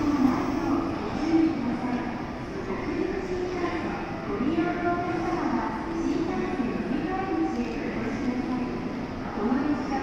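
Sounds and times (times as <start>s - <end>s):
faint voices: 0.0s - 10.0s
train hum and rumble: 0.0s - 10.0s.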